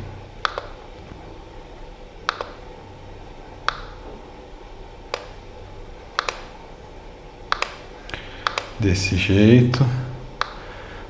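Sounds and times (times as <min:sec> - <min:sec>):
faint steady hum: 0:00.0 - 0:11.0
computer mouse clicks: 0:00.4 - 0:00.8, 0:02.3 - 0:02.6, 0:03.6 - 0:04.0, 0:05.1 - 0:05.4, 0:06.2 - 0:06.5, 0:07.5 - 0:08.8, 0:10.4 - 0:10.6.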